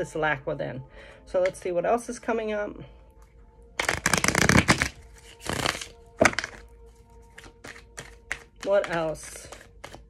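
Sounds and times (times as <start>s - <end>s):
cards being shuffled: 3.8s - 10.0s.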